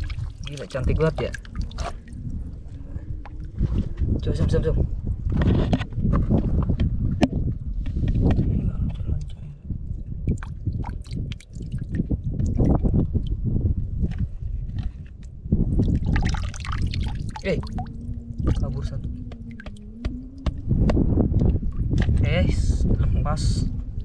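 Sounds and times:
hands splashing in water: 0.0 - 2.2, 15.8 - 18.8
water dripping and trickling: 0.0 - 4.3, 9.2 - 13.4, 15.7 - 22.1.

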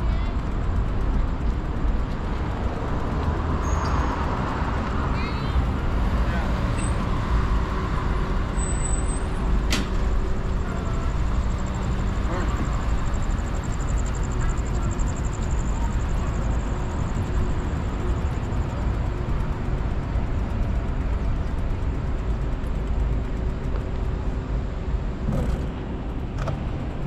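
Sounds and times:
bicycle rolling on sidewalk: 0.0 - 27.0.

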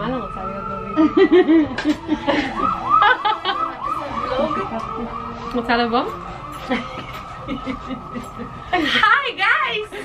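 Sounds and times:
siren yelping: 0.0 - 9.8.

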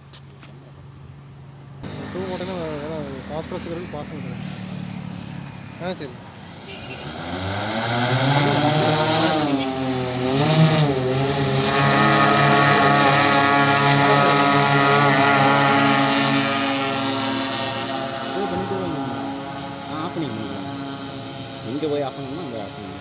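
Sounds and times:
drone propellers buzzing: 1.8 - 23.0.

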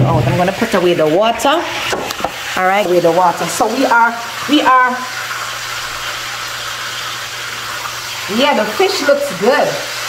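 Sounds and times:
fish sizzling in hot oil: 0.0 - 10.0.

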